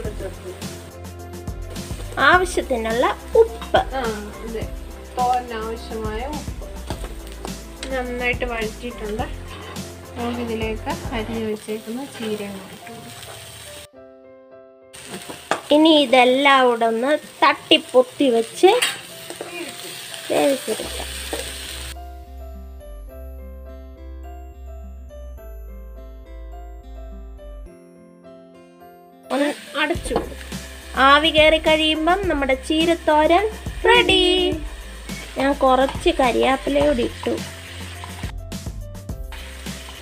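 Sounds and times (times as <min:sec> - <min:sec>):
greens sizzling in a pan: 0:00.0 - 0:01.0, 0:01.6 - 0:13.9, 0:15.0 - 0:22.0, 0:29.3 - 0:38.4, 0:39.2 - 0:40.0
background piano music: 0:00.0 - 0:40.0
woman speaking: 0:29.3 - 0:30.3, 0:31.0 - 0:34.6, 0:35.4 - 0:37.5.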